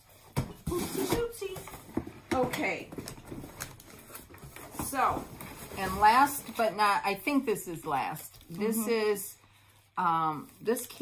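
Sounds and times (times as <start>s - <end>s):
cardboard rustling and scraping: 0.0s - 6.9s.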